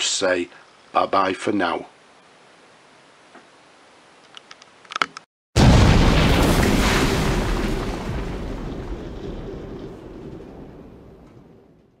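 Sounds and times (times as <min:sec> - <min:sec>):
deep rumbling boom: 0:05.6 - 0:12.0.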